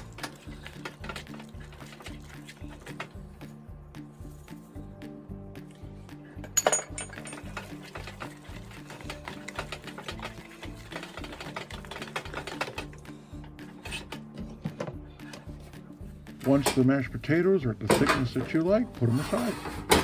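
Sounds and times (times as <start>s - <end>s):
wooden spoon stirring in pot: 0.0s - 3.3s, 7.4s - 14.6s
background music with steady beat: 0.0s - 20.0s.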